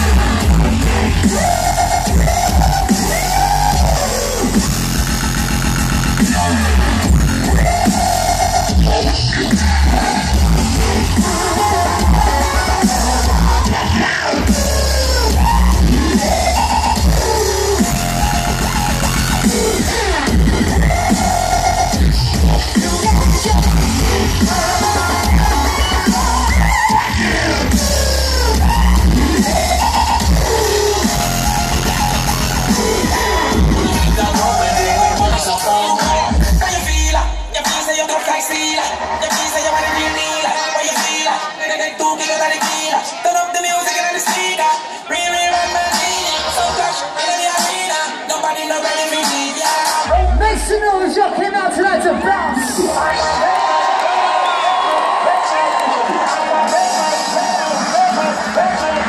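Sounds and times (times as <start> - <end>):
dubstep music over sound system: 0.0 - 59.0.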